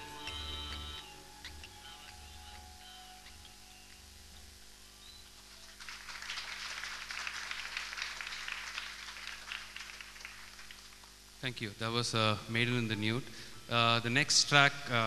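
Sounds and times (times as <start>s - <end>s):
low music beats: 0.0s - 3.9s
audience applauding: 5.6s - 11.1s.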